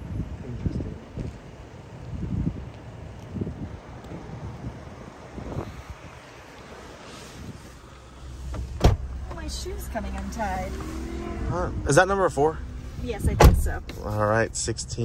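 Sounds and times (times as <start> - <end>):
wind buffeting microphone: 0.0 - 7.9, 8.5 - 13.9
car door latch clack: 8.5 - 9.1, 13.4 - 13.7.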